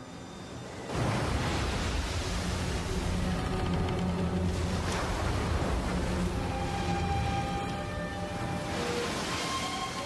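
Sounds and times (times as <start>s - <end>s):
rough lake water: 0.1s - 10.0s.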